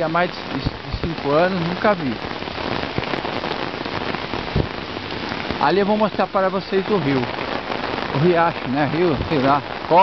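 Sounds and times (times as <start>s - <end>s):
heavy rain on pavement: 0.0s - 10.0s.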